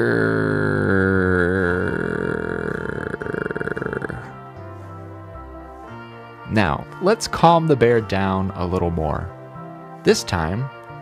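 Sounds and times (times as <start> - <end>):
person imitating bear growl: 0.0 - 4.4
background music: 0.0 - 11.0.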